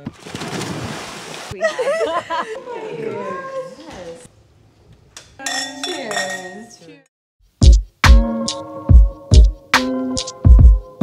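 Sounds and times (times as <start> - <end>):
indistinct voices: 2.5 - 4.3
tableware clinking: 5.2 - 6.9.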